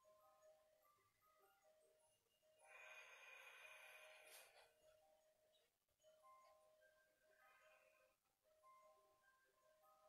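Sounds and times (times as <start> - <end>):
faint soft background music: 0.0 - 10.0.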